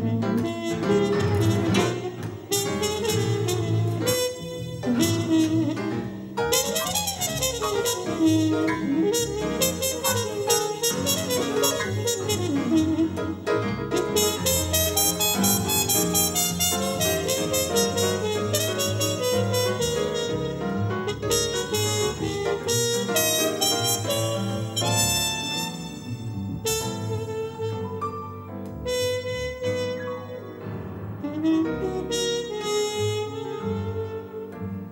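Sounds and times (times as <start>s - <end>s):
double bass: 0.0s - 34.9s
piano: 0.0s - 34.9s
trumpet playing jazz: 0.0s - 34.9s.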